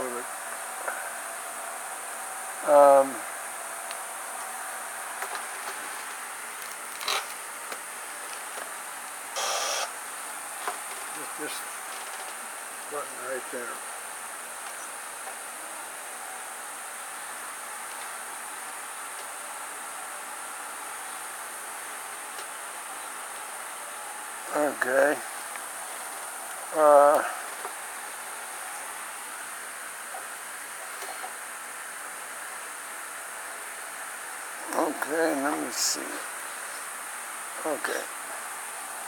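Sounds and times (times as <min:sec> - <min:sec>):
high-pitched insect buzz: 0:09.4 - 0:10.1.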